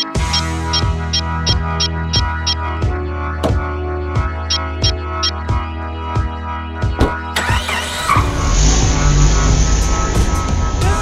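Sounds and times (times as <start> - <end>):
background music with beat: 0.0 - 7.4, 8.3 - 11.0
car engine rumble: 7.0 - 11.0.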